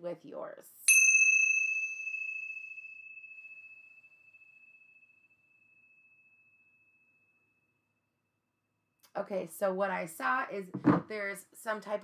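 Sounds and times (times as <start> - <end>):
metal chime ringing: 0.9 - 7.0.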